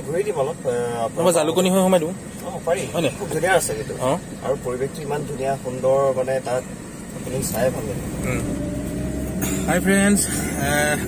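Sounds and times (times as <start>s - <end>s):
man talking: 0.0s - 8.5s, 9.5s - 11.0s
car running hum: 0.0s - 11.0s.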